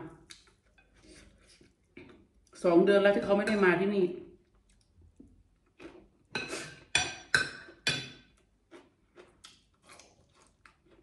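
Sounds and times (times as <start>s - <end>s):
spoon scraping ceramic plate: 6.3s - 8.2s.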